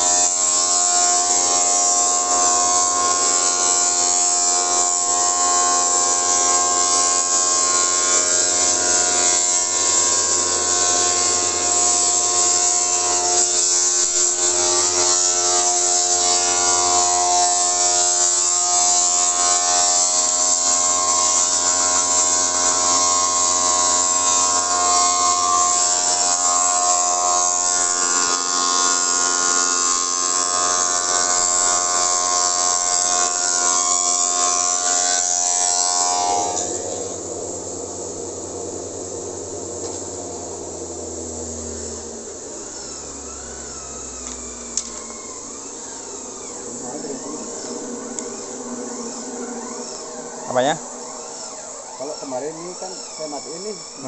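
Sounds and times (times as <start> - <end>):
machine motor whining: 0.0 - 54.0.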